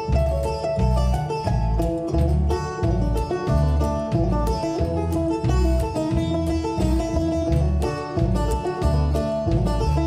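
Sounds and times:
picked banjo notes: 0.0 - 10.0
upright bass beat: 0.0 - 10.0.

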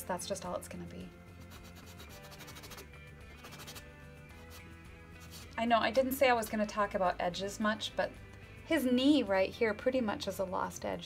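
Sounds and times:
quiet background music: 0.0 - 11.0
cloth rag rubbing on canvas: 1.5 - 5.6.

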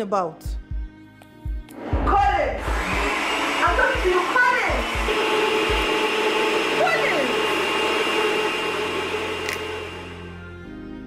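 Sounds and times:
electric blender running: 1.8 - 10.6.

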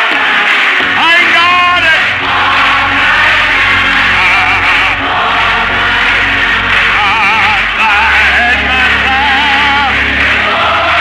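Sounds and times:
church music with singing: 0.0 - 11.0
steady bass: 0.8 - 11.0.

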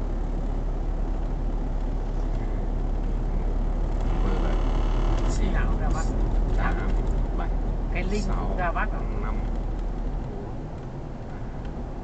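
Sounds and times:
car engine rumble: 0.0 - 12.0
tyres on road: 0.0 - 12.0.

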